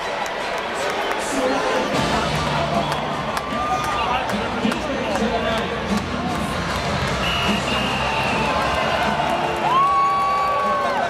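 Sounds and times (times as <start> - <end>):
ballpark crowd din: 0.0 - 11.0.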